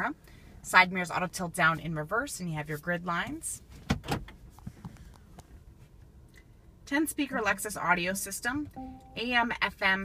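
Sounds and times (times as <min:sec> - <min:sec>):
low steady car cabin hum: 0:00.0 - 0:10.0.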